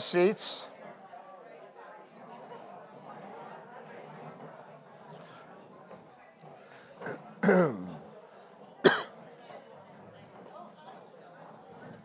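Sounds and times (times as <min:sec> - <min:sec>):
man clearing his throat: 0:07.4 - 0:08.0, 0:08.8 - 0:09.2
sharp cough: 0:07.4 - 0:08.0, 0:08.8 - 0:09.2.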